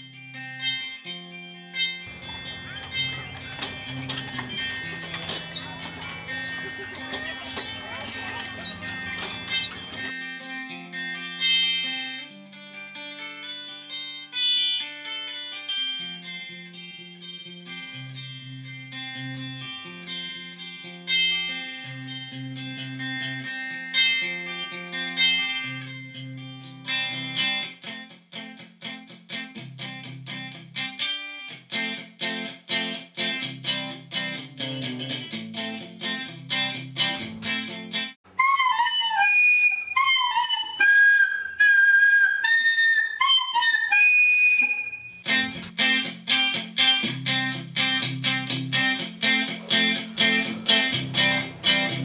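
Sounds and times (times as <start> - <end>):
picked guitar over bass: 0.0 - 14.9, 15.6 - 27.9, 31.8 - 38.2, 44.7 - 52.0
recorder playing melody: 38.3 - 45.7.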